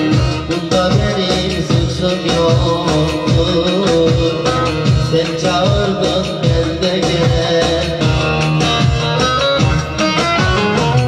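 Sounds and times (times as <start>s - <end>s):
person singing: 0.0s - 11.0s
steady low beat: 0.0s - 11.0s.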